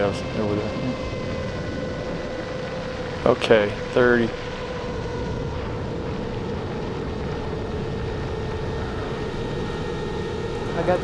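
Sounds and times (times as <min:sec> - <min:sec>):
low rumble: 0:00.0 - 0:11.0
steady constant hum: 0:00.0 - 0:11.0.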